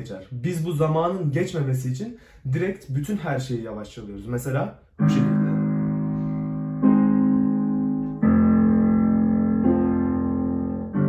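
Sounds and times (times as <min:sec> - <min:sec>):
slow digital piano chords: 0:04.9 - 0:11.0.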